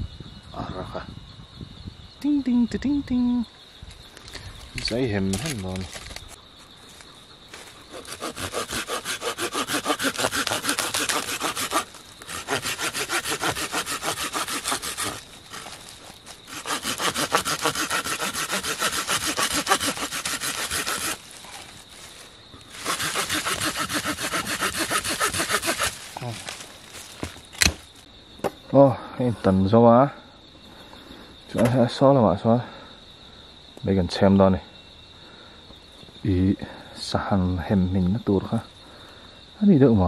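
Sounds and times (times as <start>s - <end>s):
hand saw cutting wooden branch: 7.9s - 21.6s, 22.7s - 26.6s.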